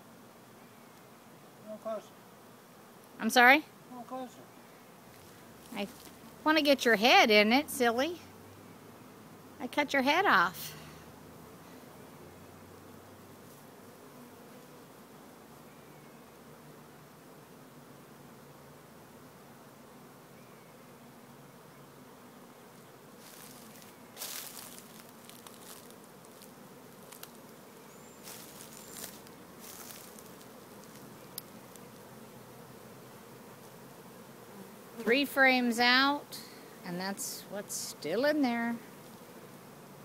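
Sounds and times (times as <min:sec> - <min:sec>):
bee swarm buzzing: 0:00.0 - 0:40.0.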